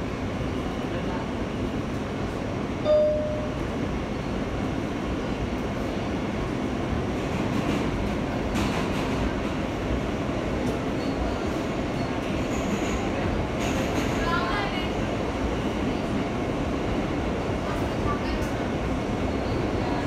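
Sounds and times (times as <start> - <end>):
subway train wheels rumbling on rails: 0.0 - 20.0
train clattering: 7.2 - 9.7, 10.6 - 14.9.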